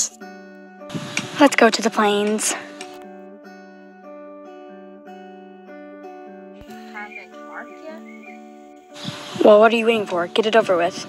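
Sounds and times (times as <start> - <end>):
acoustic guitar plucking slow melody: 0.0 - 11.0.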